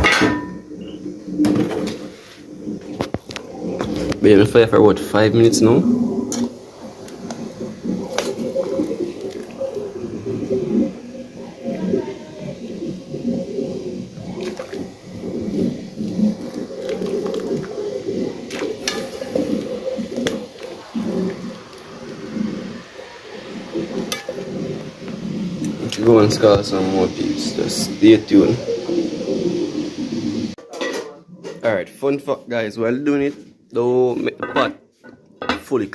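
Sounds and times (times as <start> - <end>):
water boiling and bubbling: 0.0 - 30.6.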